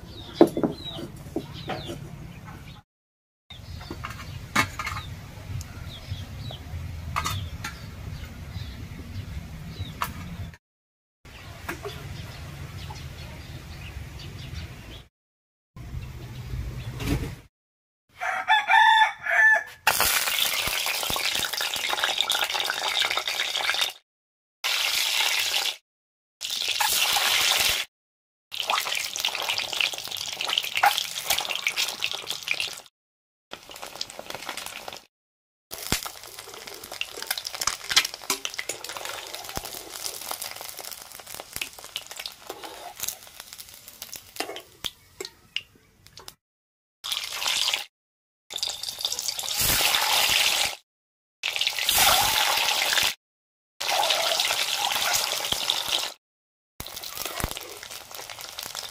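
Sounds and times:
rooster crowing: 0:18.2 - 0:19.8
eggs sizzling in hot oil: 0:19.9 - 0:24.0, 0:24.6 - 0:25.8, 0:26.4 - 0:27.9, 0:28.6 - 0:32.9, 0:33.5 - 0:35.1, 0:35.7 - 0:45.0, 0:47.0 - 0:47.9, 0:48.5 - 0:50.8, 0:51.4 - 0:53.2, 0:53.8 - 0:56.2, 0:56.8 - 0:58.9.

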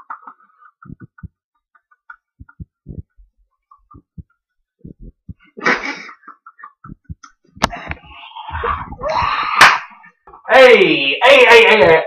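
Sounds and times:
hand bumping microphone: 0:02.4 - 0:03.3, 0:03.9 - 0:05.5, 0:06.8 - 0:09.1.

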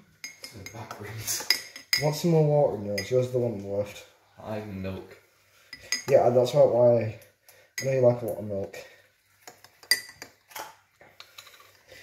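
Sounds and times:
spoon clinking against a mug: 0:00.2 - 0:02.3, 0:02.9 - 0:03.2, 0:05.7 - 0:06.3, 0:09.5 - 0:10.4.

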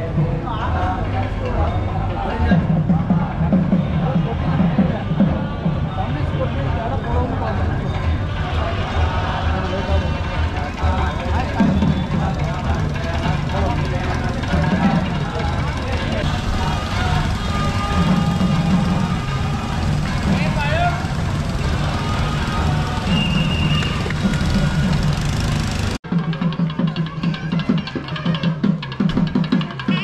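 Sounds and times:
street and vehicle noise: 0:00.0 - 0:30.0
men chanting together: 0:08.3 - 0:20.4.

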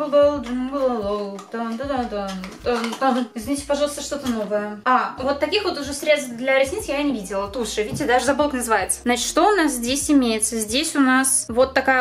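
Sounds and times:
young woman talking: 0:00.0 - 0:12.0.

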